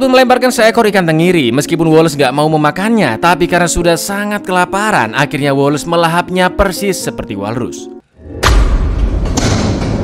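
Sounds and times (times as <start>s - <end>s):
low rumble: 8.2s - 10.0s.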